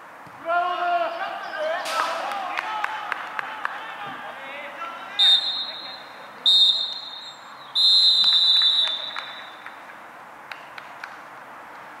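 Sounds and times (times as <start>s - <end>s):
referee's whistle blasts: 5.2s - 9.6s.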